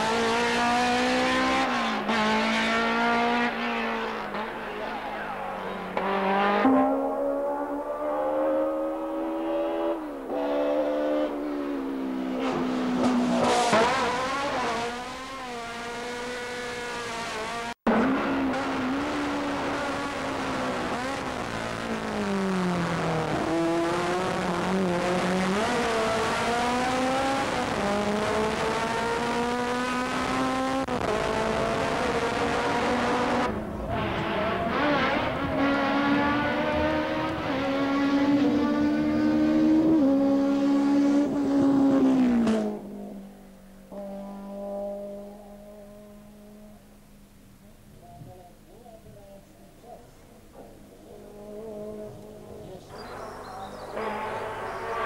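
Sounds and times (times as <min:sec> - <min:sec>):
racing car engines at full throttle: 0:00.0 - 0:47.0, 0:50.5 - 0:55.0.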